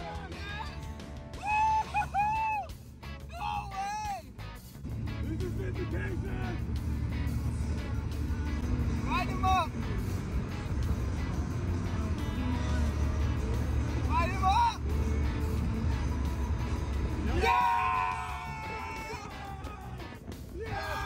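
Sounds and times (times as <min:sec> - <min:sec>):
background music: 0:00.0 - 0:21.0
car road and engine rumble: 0:00.0 - 0:21.0.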